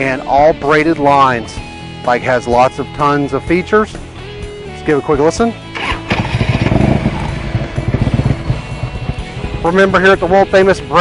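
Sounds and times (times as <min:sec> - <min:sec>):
motorcycle engine exhaust pulses: 0:05.8 - 0:11.0.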